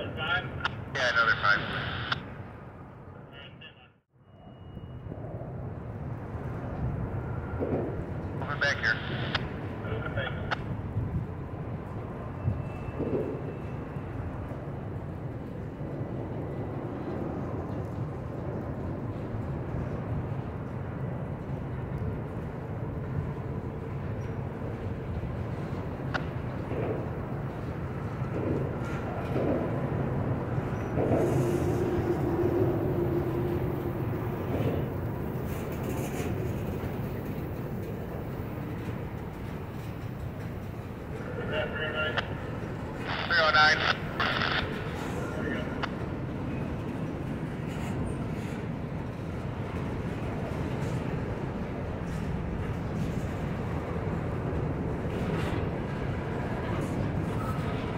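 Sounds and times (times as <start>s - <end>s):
train wheels rumbling on rails: 5.6s - 57.9s
whining wheels: 10.8s - 41.2s.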